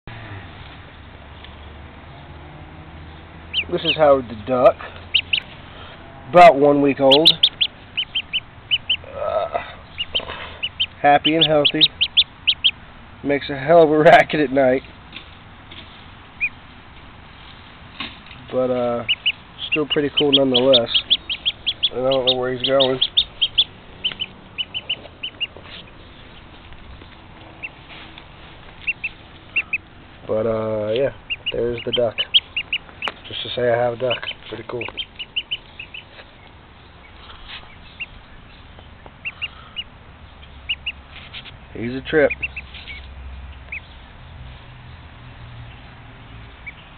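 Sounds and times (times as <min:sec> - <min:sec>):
duckling peeping: 0:03.0 - 0:15.0, 0:16.2 - 0:17.1, 0:18.3 - 0:44.1, 0:45.3 - 0:46.9.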